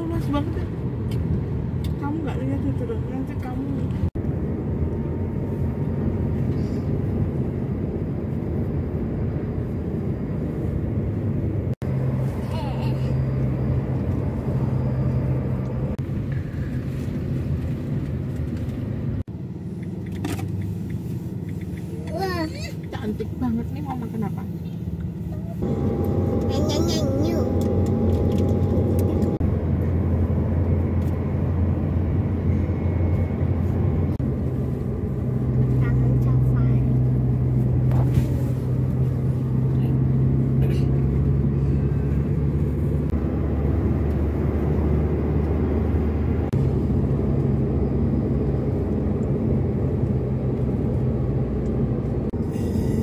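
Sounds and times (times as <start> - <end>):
car engine and tyre drone: 0.5 - 23.4, 24.4 - 53.0.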